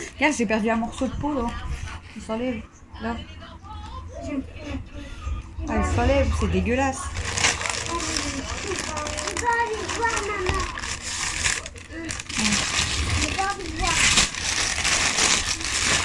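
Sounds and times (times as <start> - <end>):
background voices: 2.8 - 11.0
plastic bag crinkling: 6.6 - 16.0.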